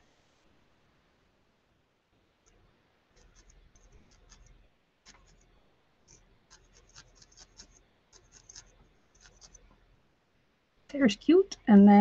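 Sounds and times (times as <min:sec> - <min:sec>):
felting needle poking into wool: 0:03.2 - 0:05.5, 0:06.1 - 0:09.7.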